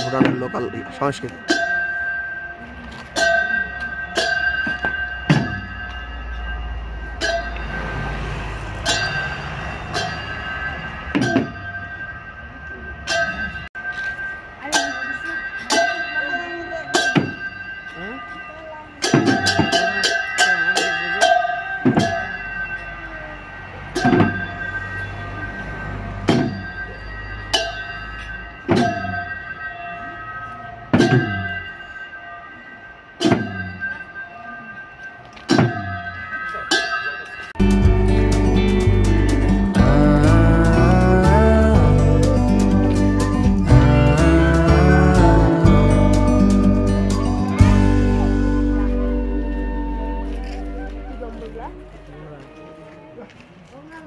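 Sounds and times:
hand drums beaten with metallic ring: 14.6 - 22.8, 33.2 - 34.1.

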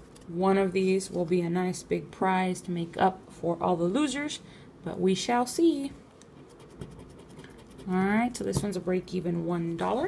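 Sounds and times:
scratching lottery ticket: 6.4 - 8.2.

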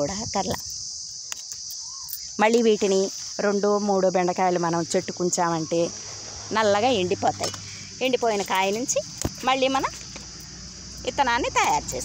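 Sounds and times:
woman speaking: 0.0 - 0.7, 2.4 - 10.0, 11.0 - 12.0
crickets chirring: 0.0 - 12.0.

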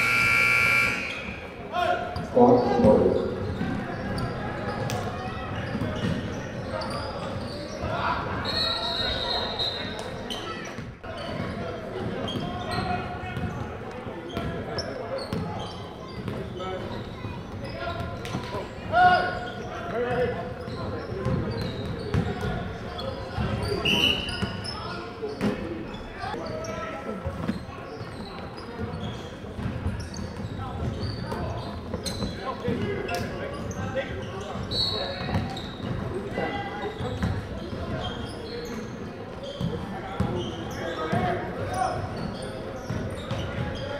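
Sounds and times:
echoing voices: 0.0 - 4.2.

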